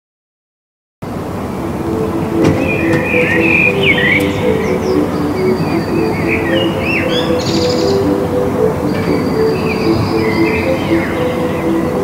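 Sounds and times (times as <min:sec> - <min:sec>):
small birds chirping: 0:02.1 - 0:12.0.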